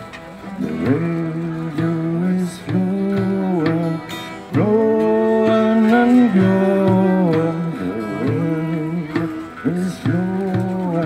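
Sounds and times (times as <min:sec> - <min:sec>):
hand drum: 0:00.0 - 0:11.0
strummed acoustic guitar: 0:00.0 - 0:11.0.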